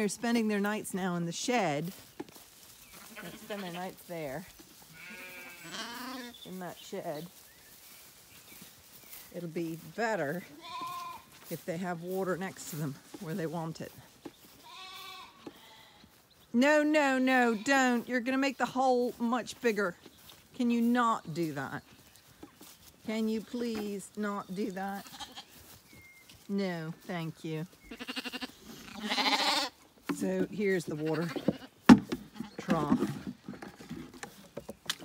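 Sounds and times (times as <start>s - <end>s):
sheep bleating: 3.0s - 3.9s, 4.9s - 6.3s, 10.5s - 11.3s, 14.6s - 16.0s, 24.9s - 25.6s, 27.9s - 29.8s.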